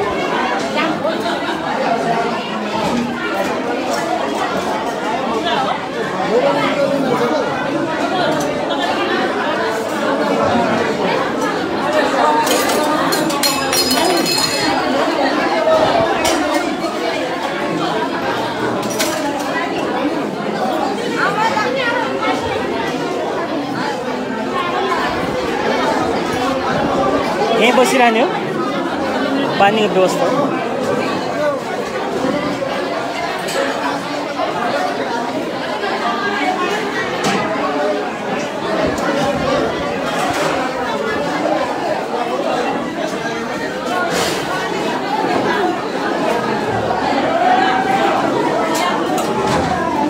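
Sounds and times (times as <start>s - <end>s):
many people talking: 0.0s - 50.0s
steel plates and cups clinking: 12.4s - 14.9s.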